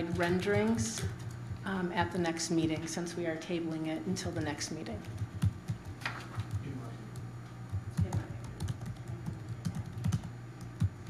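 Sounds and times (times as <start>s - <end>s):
keyboard typing: 0.0s - 1.8s, 5.0s - 11.0s
steady low hum: 0.0s - 11.0s.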